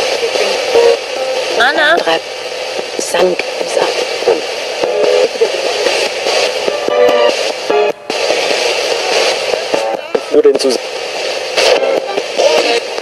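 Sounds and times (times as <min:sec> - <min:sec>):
radio music and voice snippets: 0:00.0 - 0:13.0
radio static hiss: 0:00.0 - 0:13.0.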